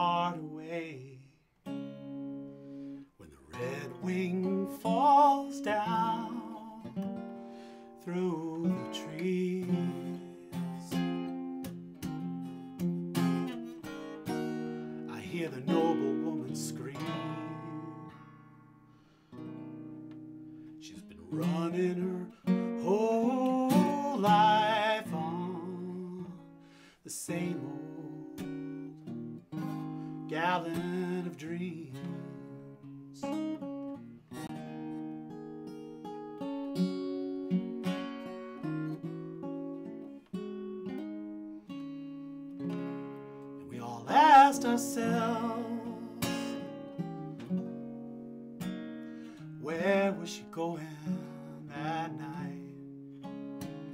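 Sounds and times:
solo acoustic guitar: 0:00.0 - 0:53.9.

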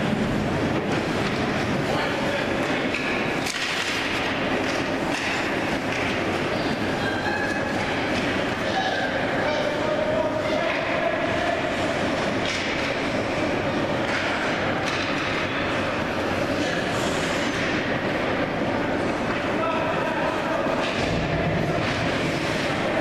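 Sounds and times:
scattered voices: 0:00.0 - 0:23.0
steady rink rumble: 0:00.0 - 0:23.0
hockey stick and puck clacks: 0:02.6 - 0:06.3, 0:12.2 - 0:13.0, 0:14.0 - 0:15.8
skates scraping ice: 0:21.0 - 0:23.0.

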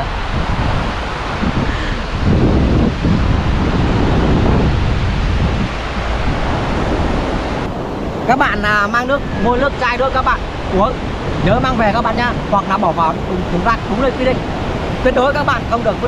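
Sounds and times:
surf breaking on a beach: 0:00.0 - 0:16.0
wind blowing across microphone: 0:00.0 - 0:16.0.

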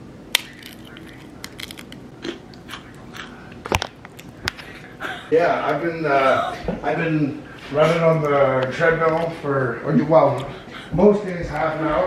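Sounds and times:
tortilla chips crunching: 0:00.3 - 0:04.4.

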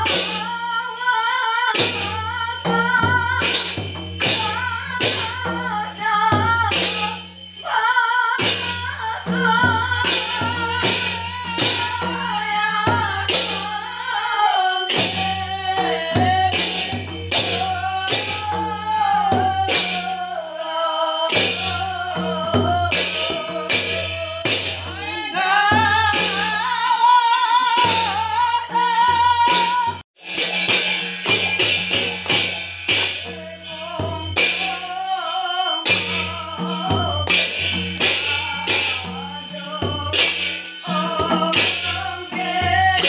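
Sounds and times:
hand-played barrel drum: 0:00.0 - 0:20.6, 0:21.2 - 0:26.9, 0:27.5 - 0:43.0
voices singing devotional song: 0:00.0 - 0:30.0, 0:32.6 - 0:43.0.

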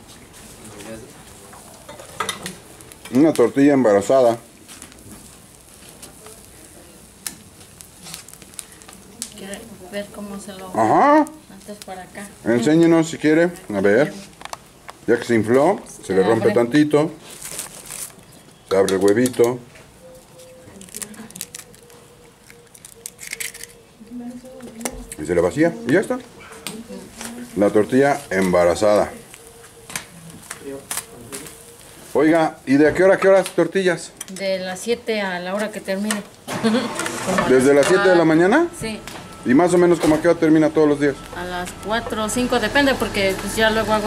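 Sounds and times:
short crackle: 0:04.4 - 0:10.4, 0:17.2 - 0:23.8, 0:28.2 - 0:32.2
eggshell cracking: 0:20.3 - 0:23.9.

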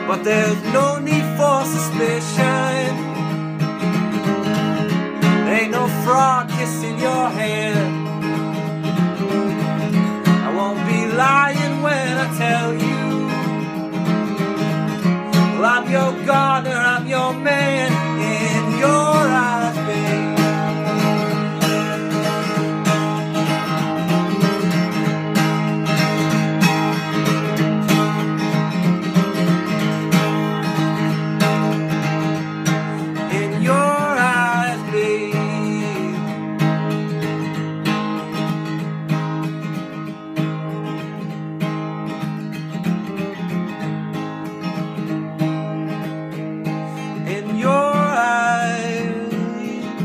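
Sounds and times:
wordless vocal: 0:00.0 - 0:03.1, 0:05.5 - 0:08.0, 0:09.9 - 0:13.6, 0:15.3 - 0:21.0, 0:33.0 - 0:36.3, 0:47.0 - 0:50.0
acoustic guitar strumming: 0:00.0 - 0:50.0.

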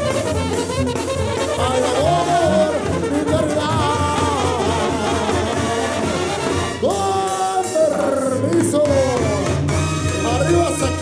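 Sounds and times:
trombones and trumpets: 0:00.0 - 0:11.0.

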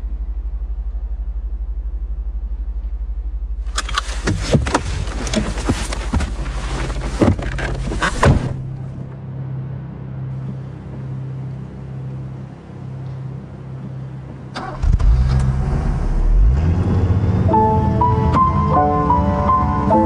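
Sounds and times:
quiet steady hum: 0:00.0 - 0:16.4
car engine starting and running: 0:00.0 - 0:20.0
knocks and rustling in car: 0:03.7 - 0:09.2.

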